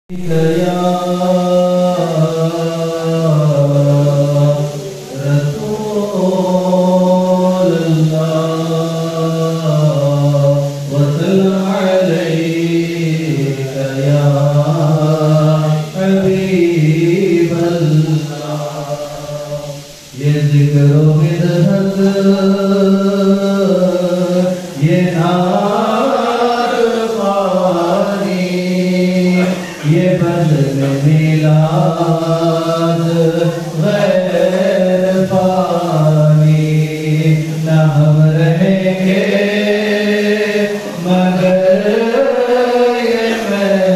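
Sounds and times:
man singing unaccompanied: 0.1 - 43.9.

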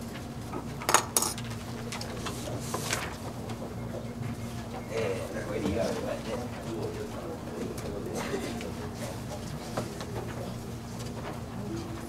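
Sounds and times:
faint indistinct voices: 1.8 - 12.0.

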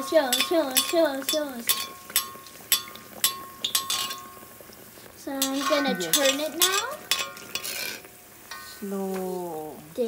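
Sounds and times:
metal skimmer clinking against wok: 0.0 - 4.4, 5.4 - 8.8
oil sizzling: 0.0 - 10.0.

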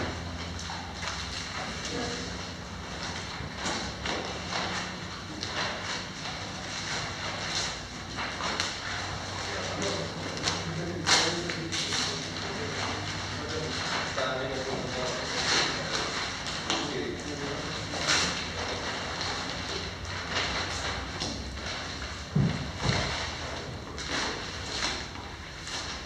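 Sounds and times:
paper rustling: 0.2 - 26.0.

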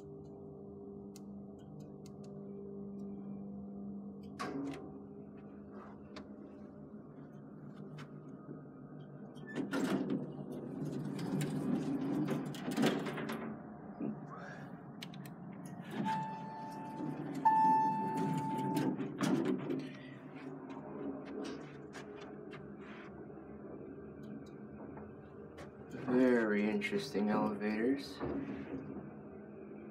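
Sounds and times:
elevator doors sliding: 9.0 - 23.1
steady electronic tone: 16.0 - 19.0.

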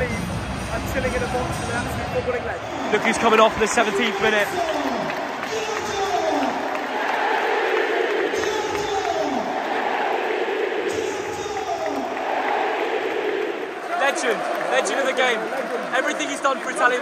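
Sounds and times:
stadium crowd singing and chanting: 5.0 - 13.9.

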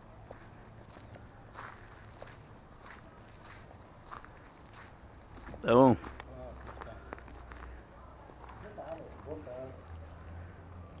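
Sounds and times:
footsteps on loose dirt: 0.0 - 10.4.

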